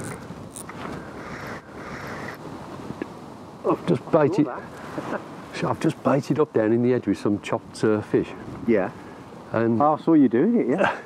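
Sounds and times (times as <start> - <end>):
wind noise on microphone: 7.6 - 9.0.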